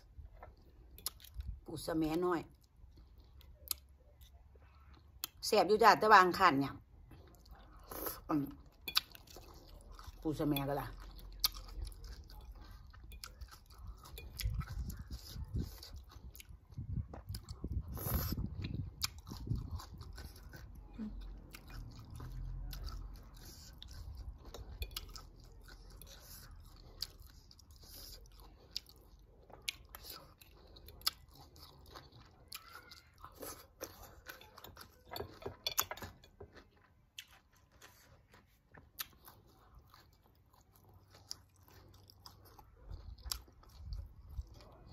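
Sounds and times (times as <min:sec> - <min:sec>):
person chewing and crunching: 0:00.0 - 0:05.4, 0:06.9 - 0:44.9.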